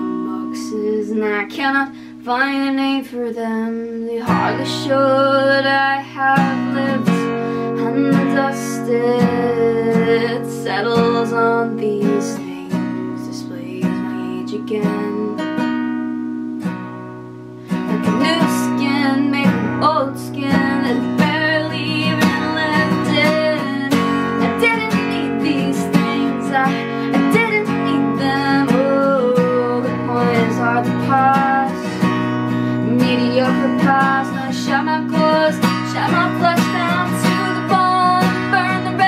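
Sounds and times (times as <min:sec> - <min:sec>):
woman singing: 0:00.0 - 0:16.0, 0:17.7 - 0:39.0
acoustic guitar strumming: 0:00.0 - 0:39.0.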